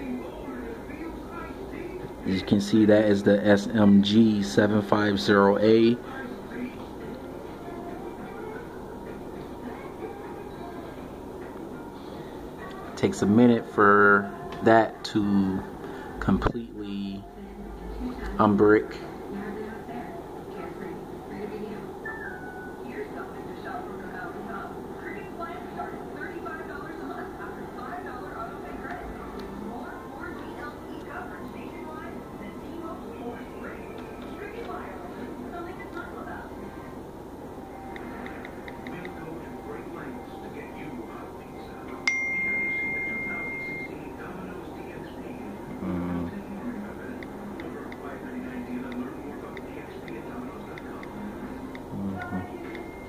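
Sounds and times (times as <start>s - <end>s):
bell-like ding: 42.1s - 43.9s.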